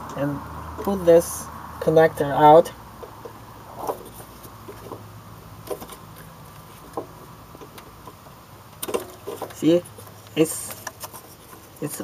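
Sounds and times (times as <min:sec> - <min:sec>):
plastic clicks and rustles: 0:08.8 - 0:11.8.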